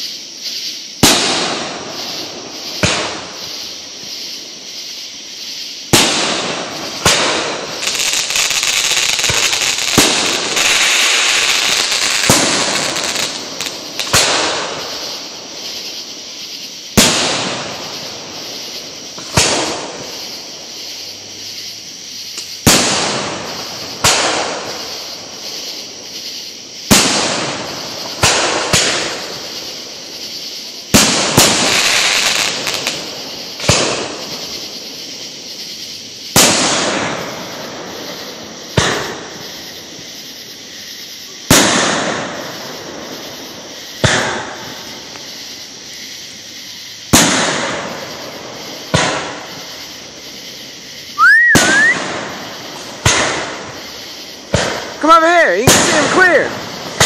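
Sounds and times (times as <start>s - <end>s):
fireworks bursting with bangs: 0.0s - 57.0s
sustained hiss: 0.0s - 57.0s.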